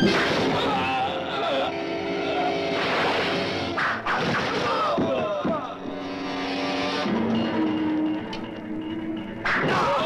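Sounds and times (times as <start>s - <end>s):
people shouting and crying: 0.3s - 2.8s, 4.4s - 5.9s, 9.5s - 10.0s.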